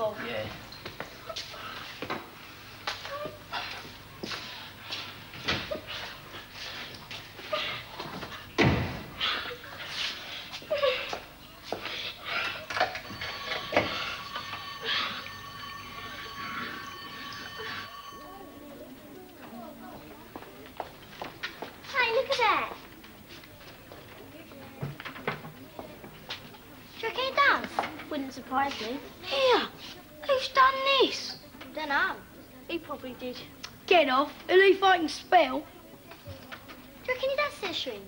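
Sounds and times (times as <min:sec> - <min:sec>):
steady high tone: 0:12.4 - 0:20.2.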